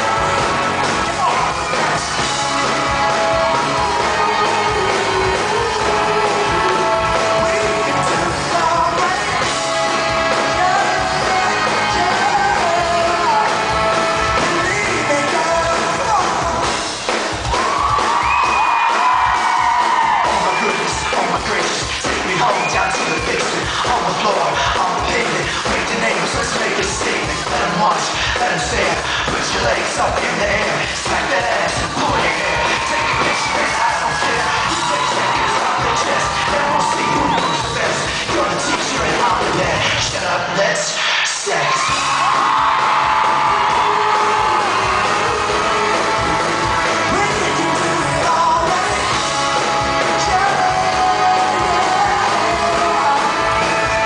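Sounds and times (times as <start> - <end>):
audience cheering and whooping: 0.0 - 16.7, 17.3 - 23.4, 31.2 - 39.5, 41.4 - 54.0
live pop-rock band: 0.0 - 54.0.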